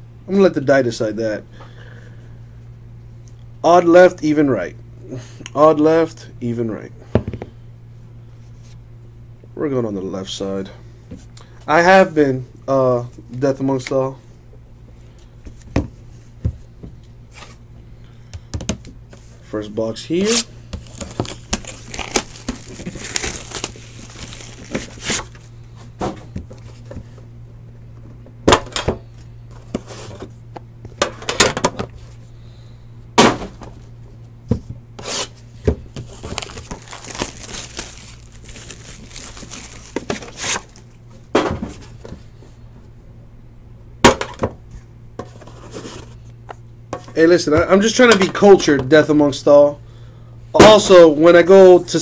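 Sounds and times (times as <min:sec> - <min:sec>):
plastic wrap tearing and crinkling: 0:20.2 - 0:25.4, 0:36.0 - 0:41.0.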